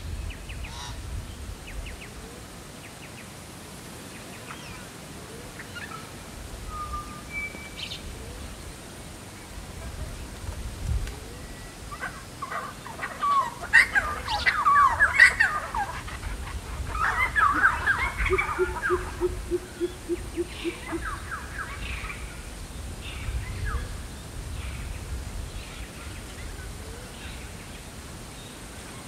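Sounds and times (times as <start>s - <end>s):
birds calling rapidly: 12.0s - 22.3s
low hooting bird notes: 17.0s - 21.4s.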